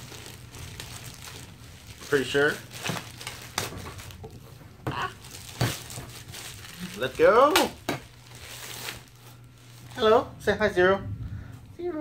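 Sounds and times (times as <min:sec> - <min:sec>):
plastic bag crinkling: 0:00.0 - 0:10.2
low steady hum: 0:00.0 - 0:12.0.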